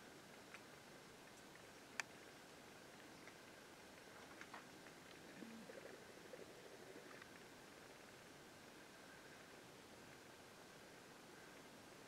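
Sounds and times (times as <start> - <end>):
soft ticks: 0.3 - 2.2, 3.0 - 5.2.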